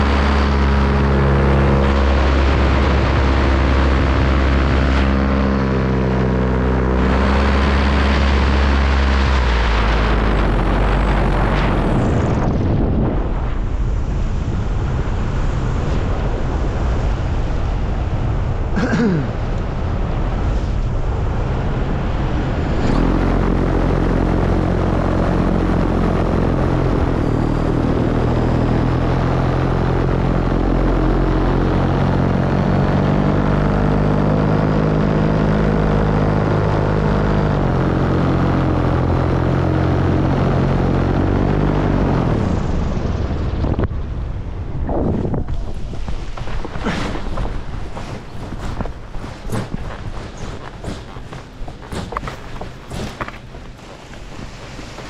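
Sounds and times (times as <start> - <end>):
paramotor engine and propeller: 0.0 - 55.0
wind rush: 0.0 - 55.0
footstep thuds and scuffs: 45.7 - 55.0.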